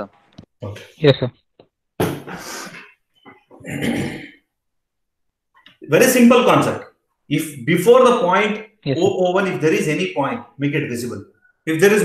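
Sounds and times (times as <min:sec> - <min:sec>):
man clearing his throat: 0:03.6 - 0:04.4.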